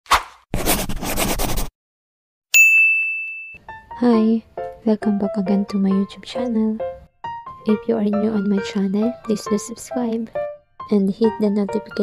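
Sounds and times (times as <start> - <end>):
bright bell ding: 2.6 - 3.6
music: 3.6 - 12.0.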